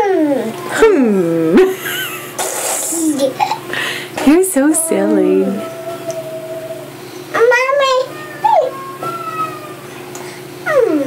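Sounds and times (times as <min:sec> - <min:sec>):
toddler giggling: 0:01.6 - 0:03.7
toddler humming: 0:05.3 - 0:09.8, 0:10.6 - 0:11.0.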